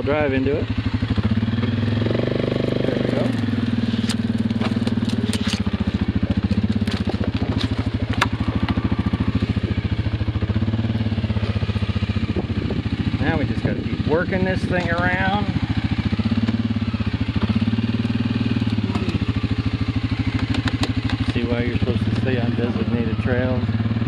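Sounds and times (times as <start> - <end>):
atv engine revving and pulling: 0.0 - 24.0
branches scraping and snapping: 2.5 - 9.7.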